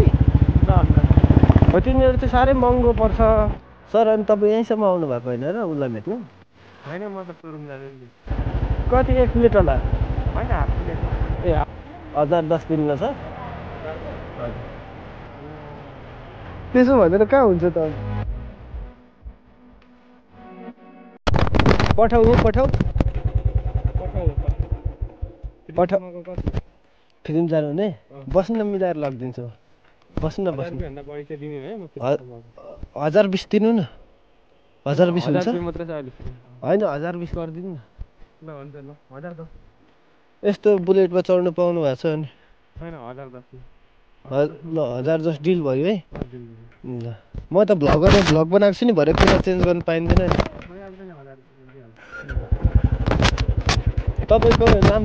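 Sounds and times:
motorcycle engine idling: 0.0s - 3.6s, 8.3s - 12.2s, 22.0s - 25.7s, 52.1s - 55.0s.

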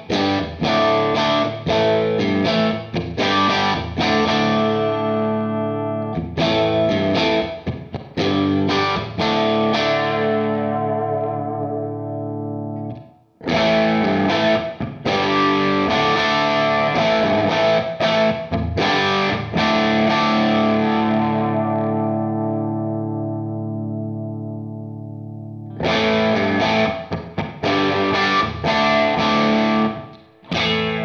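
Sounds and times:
distorted electric guitar chords: 0.0s - 31.0s.

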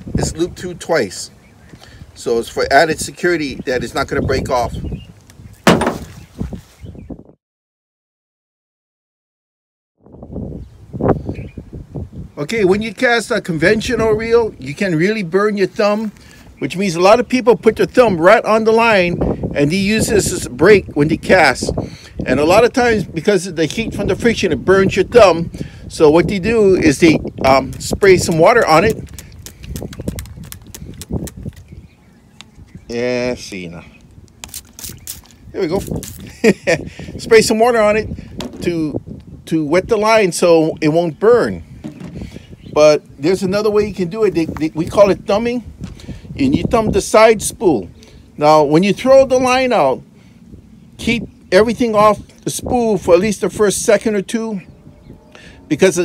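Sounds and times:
light knocks and handling: 5.6s - 6.2s, 41.8s - 42.2s
spray bottle spritzes: 34.4s - 36.3s.

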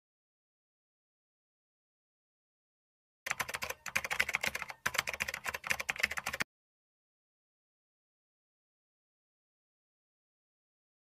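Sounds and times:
computer keyboard typing: 3.3s - 6.5s.

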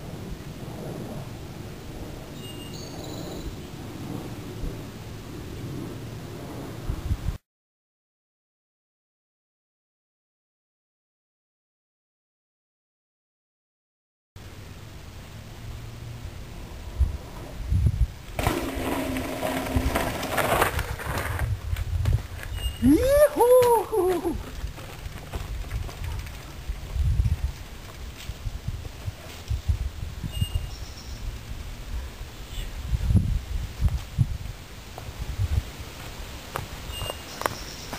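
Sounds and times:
wind buffeting microphone: 0.0s - 7.4s, 16.8s - 37.0s
bike tyre rolling buzz: 15.3s - 22.8s.

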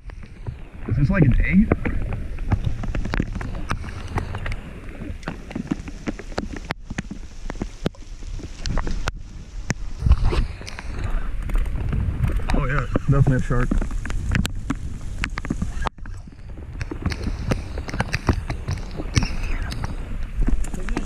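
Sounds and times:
rain hiss: 0.0s - 21.0s
wind buffeting microphone: 0.0s - 21.0s
sharp taps and clicks: 16.8s - 21.0s.

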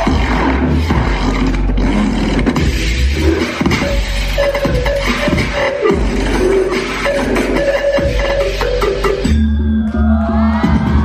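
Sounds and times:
loud dance music over speakers: 0.0s - 11.0s.

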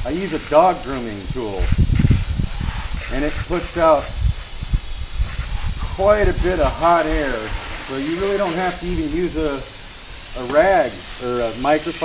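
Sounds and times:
hose nozzle spraying water: 0.0s - 12.0s.

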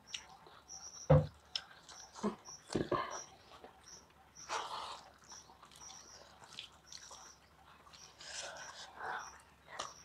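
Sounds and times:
eating by hand mouth noises: 4.5s - 10.0s.

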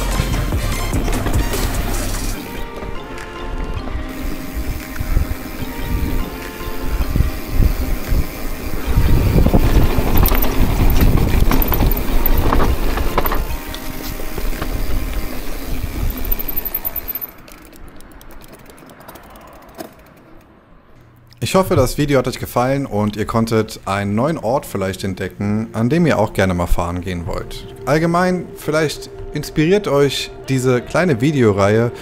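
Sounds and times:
background music: 0.0s - 15.6s, 24.0s - 32.0s
wind noise: 0.9s - 17.2s
bike tyres rattling over dirt: 4.0s - 20.5s.

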